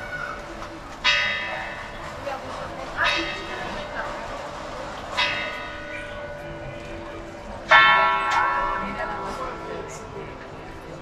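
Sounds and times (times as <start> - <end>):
clock tower bell ringing: 1.0 - 2.1, 3.0 - 4.4, 5.0 - 11.0.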